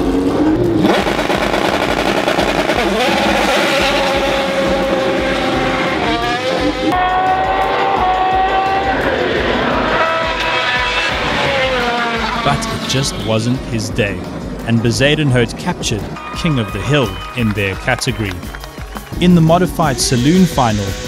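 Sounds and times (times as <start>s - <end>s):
background music with bass beat: 0.0s - 21.0s
race car engine at full throttle: 0.0s - 21.0s.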